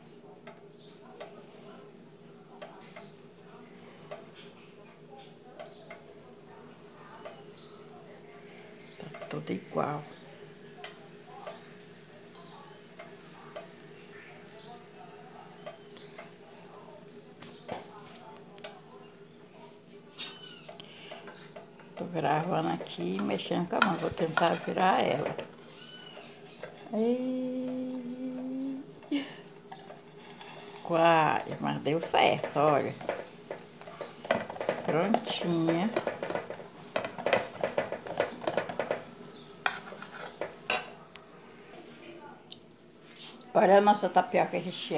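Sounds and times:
food crackling in a pan: 0.0 - 41.8
faint sizzle: 0.0 - 44.9
spoon scraping metal pan: 20.2 - 26.9, 29.7 - 41.0
steady low hum: 26.8 - 38.0.

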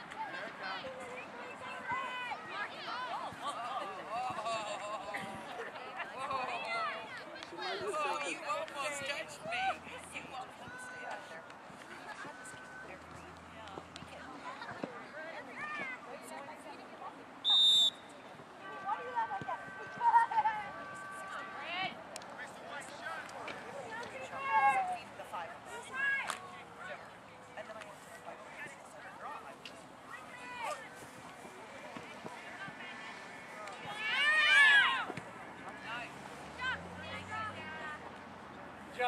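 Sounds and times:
referee whistle blast: 17.4 - 18.1
people shouting: 33.8 - 35.1.

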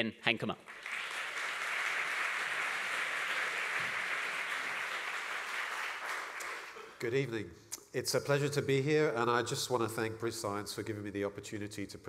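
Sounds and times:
audience applauding: 0.6 - 7.0.

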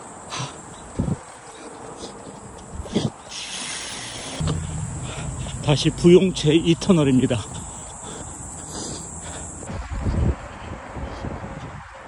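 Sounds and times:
wind noise on microphone: 0.9 - 1.2, 2.7 - 7.7, 9.6 - 12.0.

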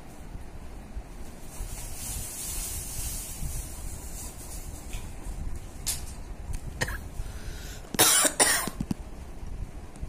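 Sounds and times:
person coughing: 6.8 - 7.1, 8.0 - 8.8.

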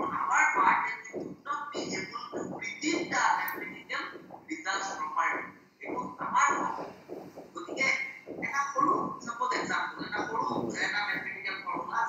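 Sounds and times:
person speaking over video call: 0.0 - 12.0.

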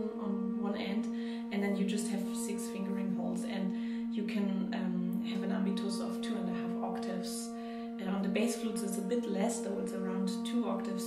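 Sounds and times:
bass flutes holding low tones: 0.0 - 11.0
breathy air noise: 1.1 - 1.5, 3.7 - 4.2.

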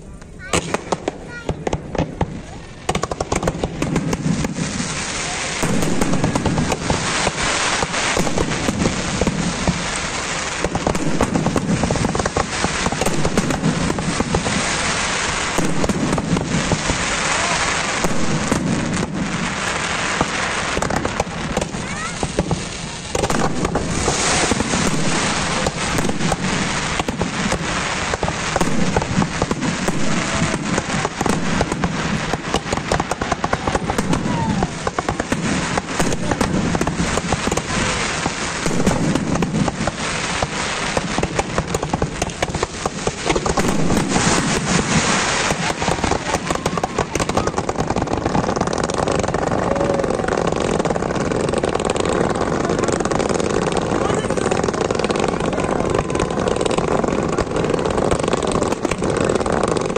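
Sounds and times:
fireworks crackling and banging: 0.0 - 59.9
hissing firework fountains: 0.0 - 59.9.

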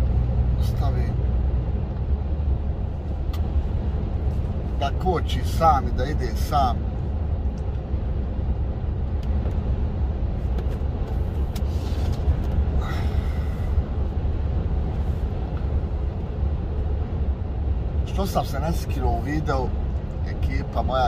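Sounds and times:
truck engine and tyres rumbling: 0.0 - 21.0.

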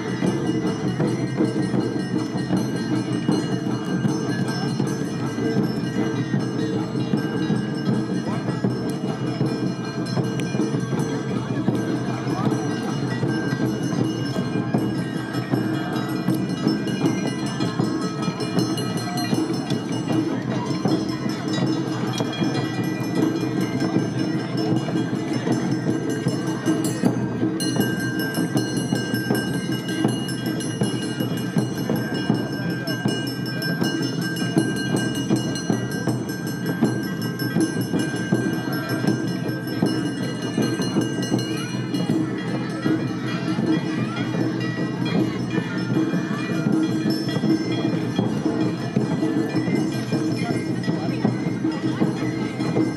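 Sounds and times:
drums: 0.0 - 52.9.

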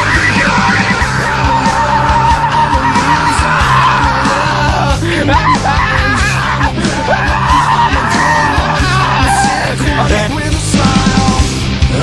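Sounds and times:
person yelling vocals: 0.0 - 11.5
drum beat: 0.0 - 11.6
hard rock music: 0.0 - 12.0.

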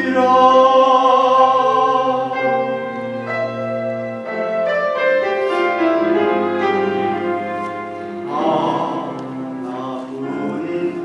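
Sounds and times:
slow piano melody: 0.0 - 11.0.

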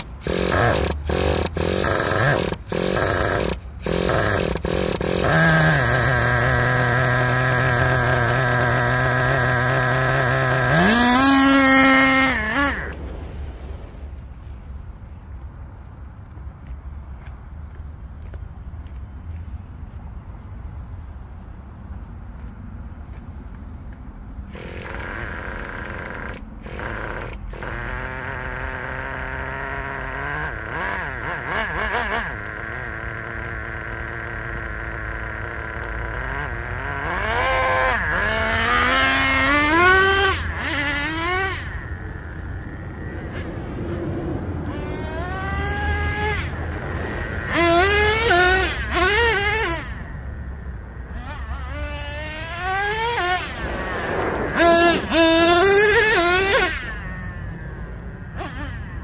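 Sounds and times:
model truck engine revving: 0.0 - 13.3, 24.5 - 59.0.

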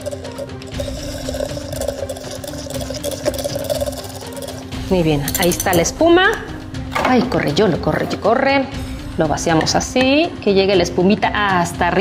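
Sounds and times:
electric milk frother whirring: 0.0 - 4.7
background music: 0.0 - 12.0.

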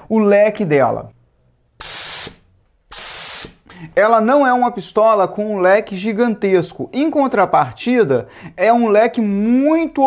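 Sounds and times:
spray gun hissing: 1.8 - 3.6.

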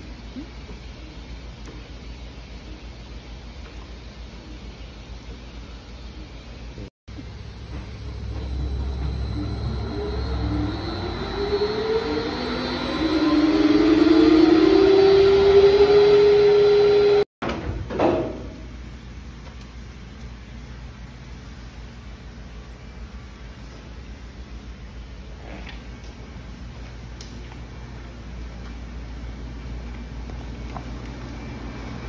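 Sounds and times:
quiet hum: 0.0 - 14.4
low rumble: 7.1 - 15.0
centrifuge motor whine: 7.1 - 17.3.

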